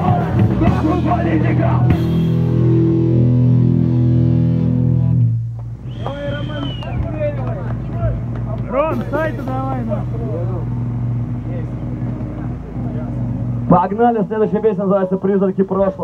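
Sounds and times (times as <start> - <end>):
people shouting: 0.0 - 2.2
punk band loud chord: 0.0 - 6.0, 8.6 - 13.7.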